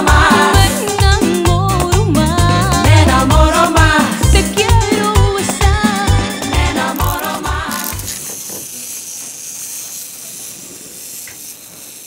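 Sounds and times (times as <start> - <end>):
high hiss: 6.8 - 12.0.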